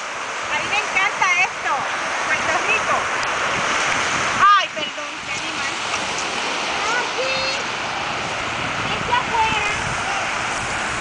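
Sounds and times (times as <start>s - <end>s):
waves breaking on beach: 0.0s - 11.0s
wind on microphone: 0.0s - 11.0s.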